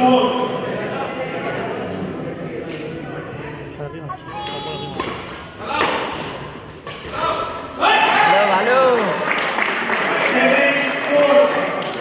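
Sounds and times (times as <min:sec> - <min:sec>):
rackets hitting shuttlecock: 0:04.3 - 0:07.6
crowd shouting and cheering: 0:07.0 - 0:12.0.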